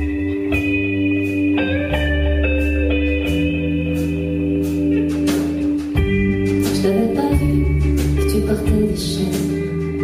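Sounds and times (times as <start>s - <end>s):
live band playing slow ballad: 0.0s - 10.0s.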